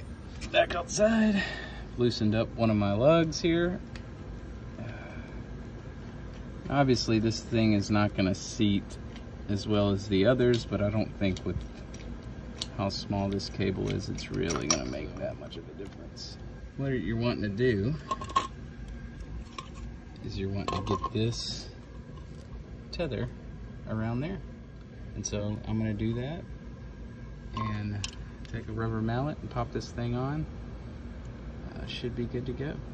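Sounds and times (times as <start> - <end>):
metal hardware clicking: 10.5 - 16.0, 20.6 - 21.6.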